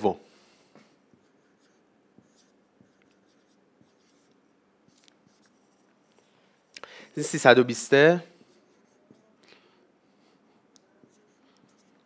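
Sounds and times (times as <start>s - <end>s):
marker scratching on whiteboard: 1.0s - 6.7s, 8.4s - 9.4s, 10.1s - 12.0s.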